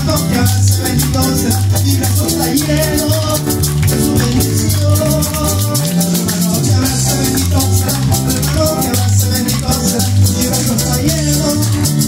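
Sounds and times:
bass line: 0:00.0 - 0:12.0
electronic keyboard: 0:00.0 - 0:12.0
shaker beat: 0:00.0 - 0:12.0.

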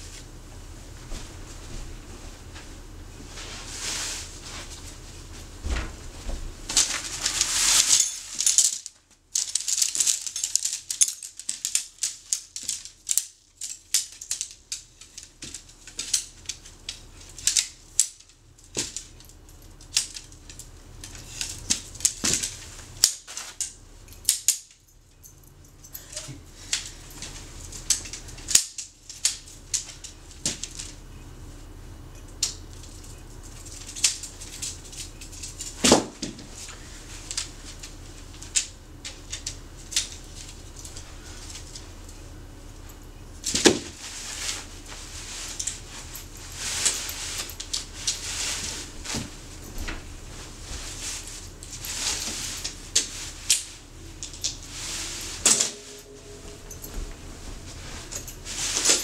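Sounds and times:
tent nylon rustling: 0:06.8 - 0:08.4
tent poles clicking together: 0:06.8 - 0:16.6.

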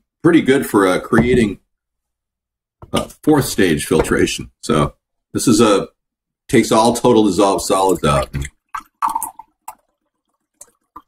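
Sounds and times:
water pouring into a glass: 0:07.4 - 0:11.0.

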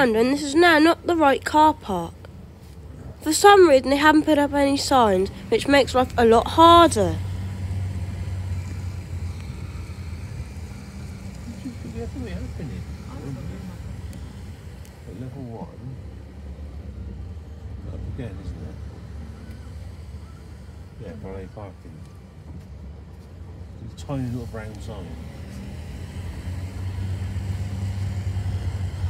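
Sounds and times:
car engine and road rumble: 0:00.0 - 0:29.0.

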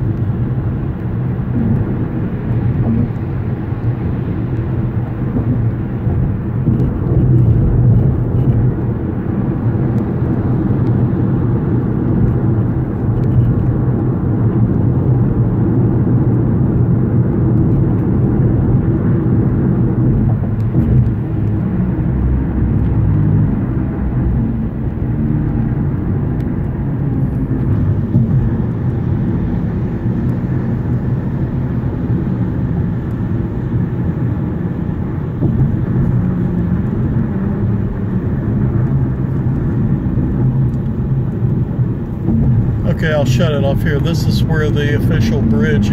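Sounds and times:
road noise inside car: 0:00.0 - 0:45.9.

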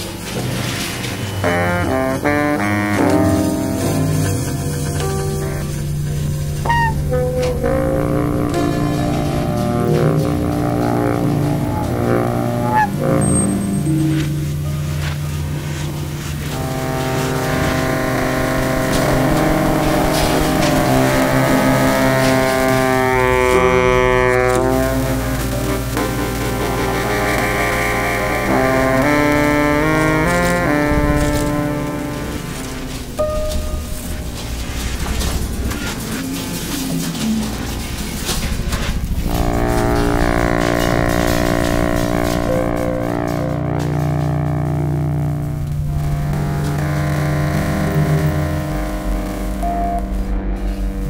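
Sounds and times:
crackling rumbling noise texture: 0:00.0 - 0:51.0
layered electronic drone: 0:00.0 - 0:51.0.

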